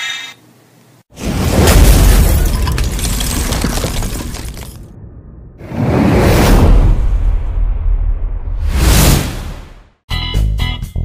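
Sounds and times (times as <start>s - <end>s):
crackling shatter: 1.2s - 4.9s
whoosh: 4.8s - 10.0s.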